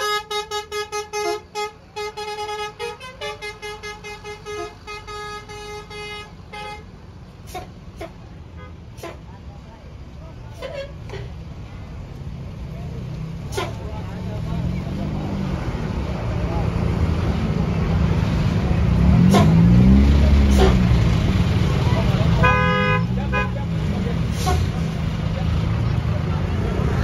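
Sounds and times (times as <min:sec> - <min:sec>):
multi-tone bus horn: 0:00.0 - 0:09.4, 0:10.5 - 0:11.3, 0:13.5 - 0:14.0, 0:19.1 - 0:21.2, 0:22.2 - 0:25.1
diesel bus engine passing: 0:00.0 - 0:27.0
voices: 0:00.1 - 0:27.0.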